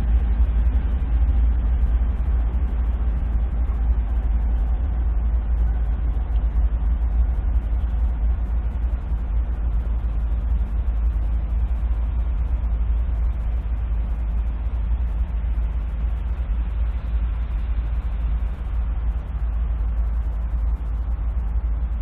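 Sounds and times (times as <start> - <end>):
diesel locomotive engine rumbling: 0.0 - 22.0.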